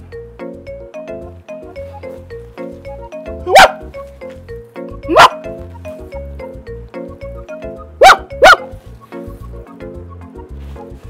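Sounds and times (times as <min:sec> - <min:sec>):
background music: 0:00.0 - 0:11.0
dog barking: 0:03.5 - 0:03.9, 0:05.1 - 0:05.5, 0:08.0 - 0:08.7.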